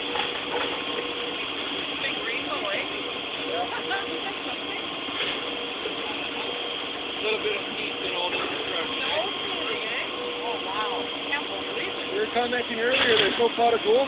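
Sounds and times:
fire truck engine running: 0.0s - 14.0s
faint voices talking: 0.4s - 14.0s.

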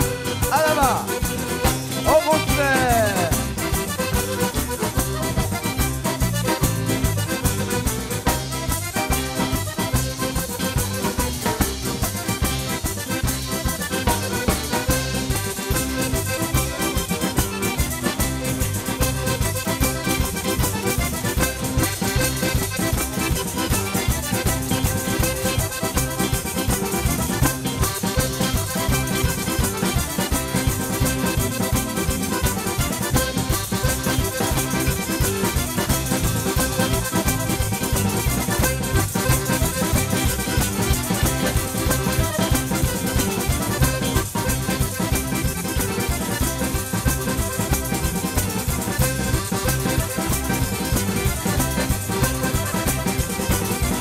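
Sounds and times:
accordion melody: 0.0s - 54.0s
drum kit: 0.0s - 54.0s
electric guitar: 0.0s - 54.0s.

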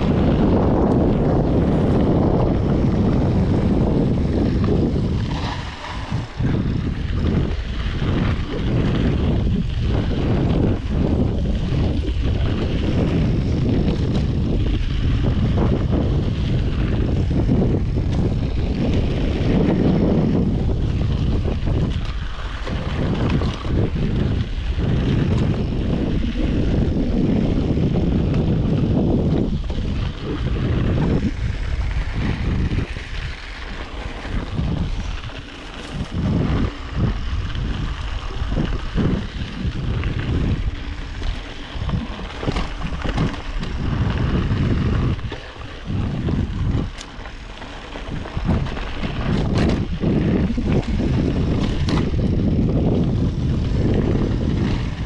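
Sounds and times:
bike clicks and rattles: 0.0s - 55.0s
tyre noise on dirt trail: 0.0s - 55.0s
wind rushing over microphone: 0.0s - 55.0s.

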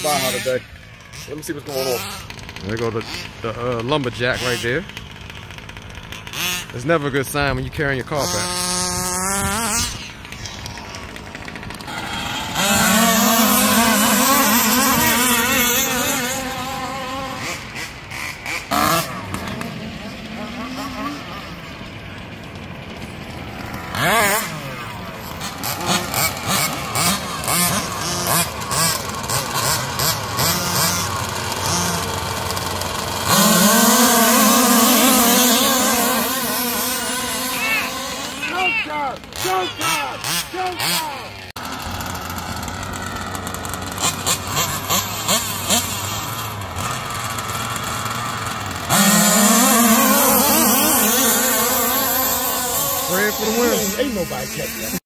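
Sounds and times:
small two-stroke engines revving: 0.0s - 55.0s.

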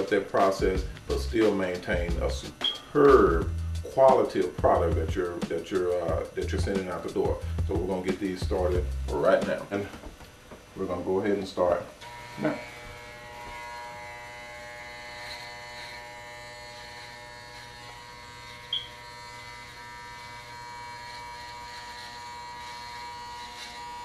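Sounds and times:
electric hair clippers buzzing: 0.0s - 24.0s.

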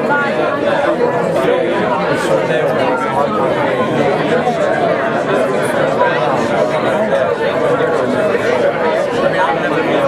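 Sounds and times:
crowd chatting: 0.0s - 10.0s.

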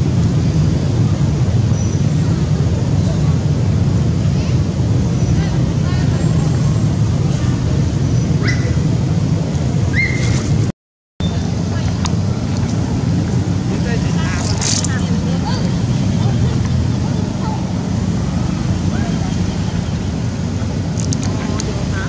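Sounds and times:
loud low rumble: 0.0s - 22.0s
monkeys squeaking: 10.0s - 10.4s.

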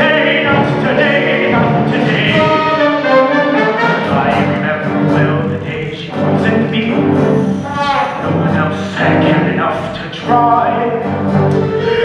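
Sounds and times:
ensemble singing in harmony: 0.0s - 12.0s
instrumental accompaniment: 0.0s - 12.0s.

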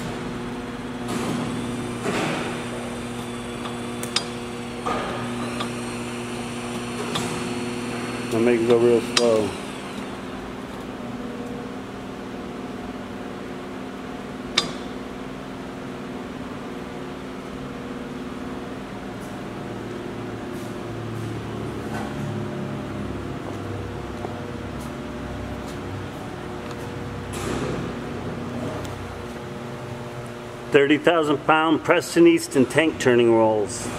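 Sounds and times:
electric motor humming: 0.0s - 10.7s.

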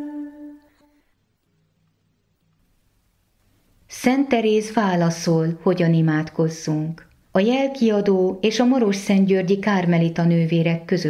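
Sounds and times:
held sung note: 0.0s - 1.0s.

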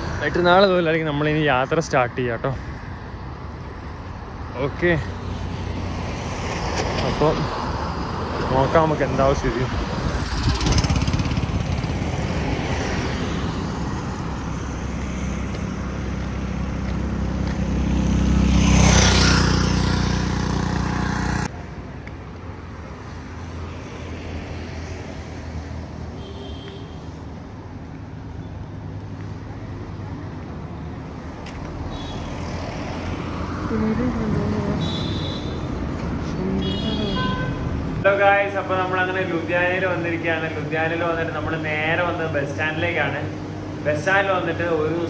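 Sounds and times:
distant street traffic: 0.0s - 45.0s
heavy vehicle engine and tyres: 0.0s - 45.0s
highway traffic passing: 0.0s - 45.0s.

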